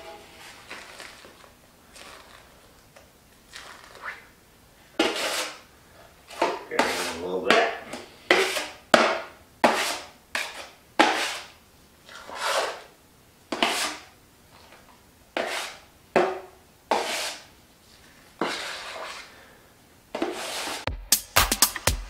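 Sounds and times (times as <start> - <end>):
drywall knife scraping metal pan: 0.0 - 1.3, 5.0 - 5.6, 6.3 - 12.9, 13.5 - 14.1, 15.4 - 17.5, 18.4 - 19.3, 20.2 - 20.9.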